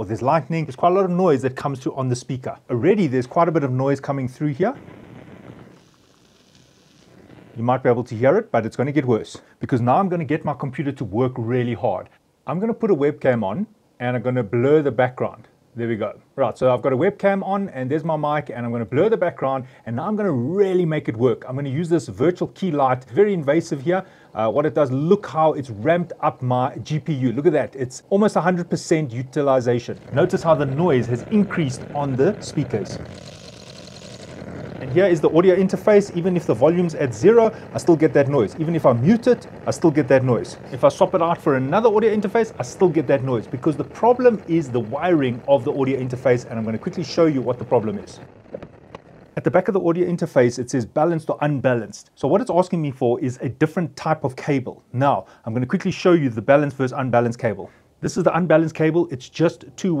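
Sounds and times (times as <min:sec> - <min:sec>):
faint electrical whine: 0:00.0 - 1:00.0
faint speaker hiss and hum: 0:00.0 - 1:00.0.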